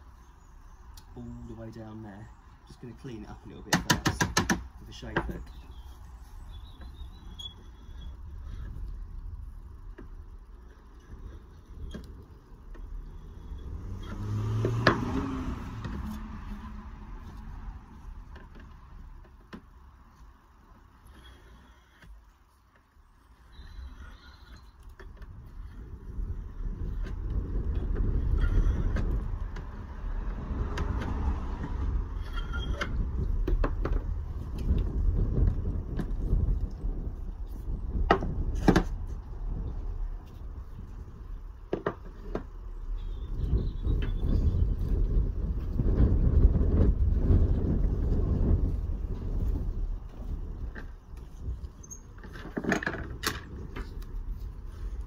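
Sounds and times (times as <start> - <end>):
sharp knocks of pipe handling: 3.7 - 5.3.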